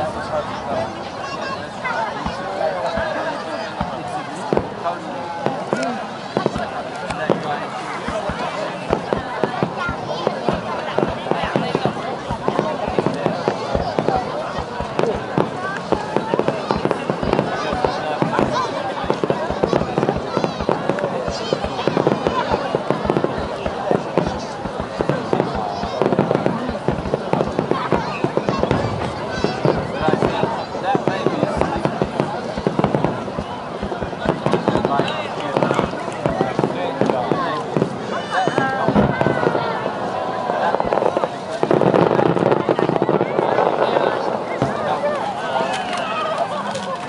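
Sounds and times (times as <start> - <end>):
people talking: 0.0 - 47.0.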